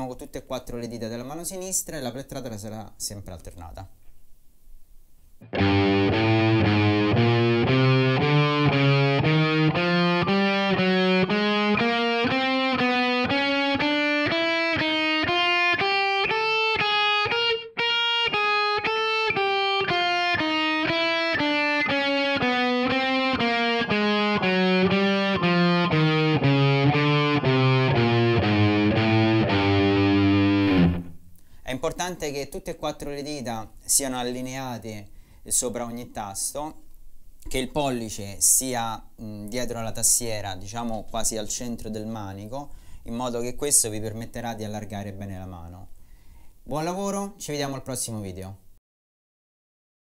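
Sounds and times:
electric guitar single notes: 5.4s - 31.3s.

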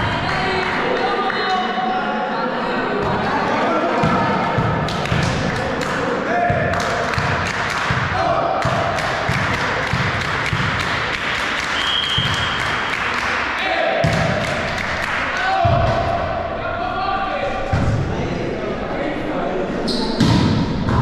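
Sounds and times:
voices in gym hall: 0.0s - 21.0s
referee's whistle: 11.8s - 12.6s.

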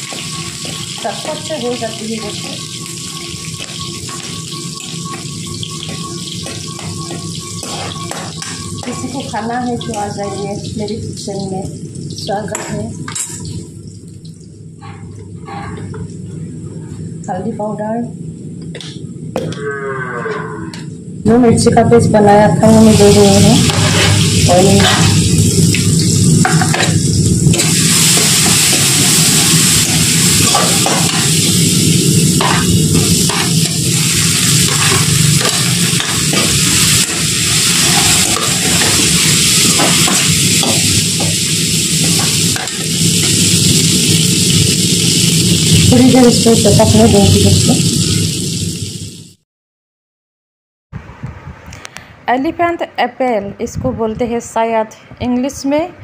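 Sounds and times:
metal spatula scraping: 0.0s - 10.4s, 23.6s - 25.3s, 32.4s - 43.4s
food sizzling in hot oil: 0.0s - 14.4s, 22.7s - 49.4s.

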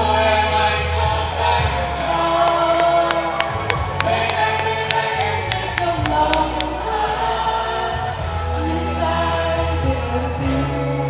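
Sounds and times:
backing music: 1.7s - 7.1s
steady ticking beat: 2.4s - 6.8s.

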